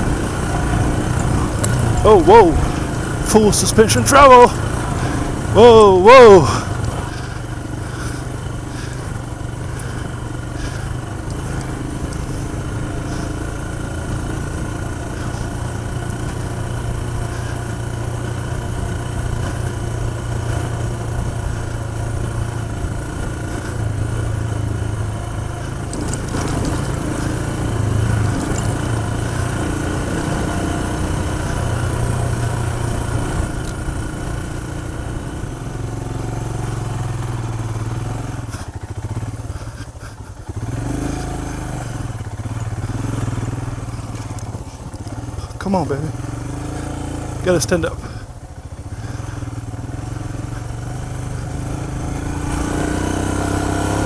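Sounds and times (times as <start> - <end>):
motorcycle engine under load: 0.0 - 54.0.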